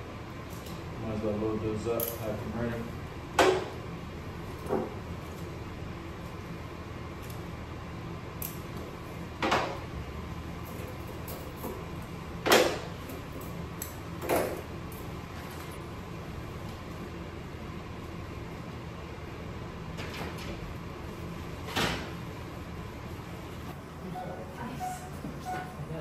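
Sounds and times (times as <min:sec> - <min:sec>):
low room hum: 0:00.0 - 0:26.0.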